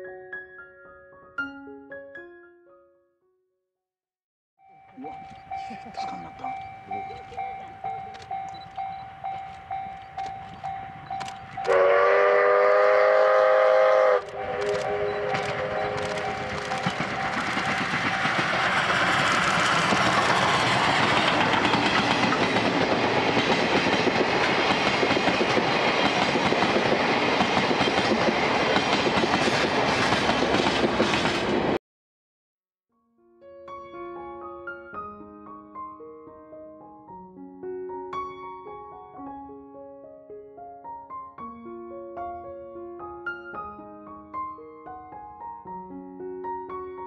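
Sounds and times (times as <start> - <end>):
train coaches rumbling and clattering: 5.0 - 11.7, 14.3 - 31.8
steam locomotive exhaust beats: 5.3 - 31.6
steam whistle chord: 11.6 - 18.2.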